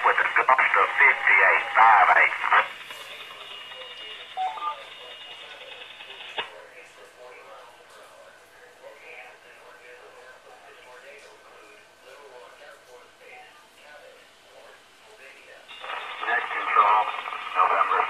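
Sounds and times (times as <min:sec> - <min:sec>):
narrow-band radio voice: 0:00.0 - 0:02.7, 0:15.7 - 0:18.0
radio hiss burst: 0:00.0 - 0:03.4, 0:15.7 - 0:18.0
faint radio voice traffic: 0:00.0 - 0:18.0.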